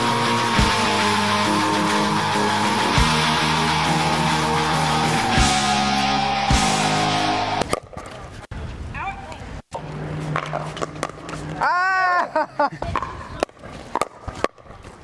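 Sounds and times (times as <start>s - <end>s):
rock guitar music: 0.0s - 7.6s
paddles striking pickleball: 9.8s - 11.6s, 12.8s - 15.0s
player shouting: 11.6s - 12.4s.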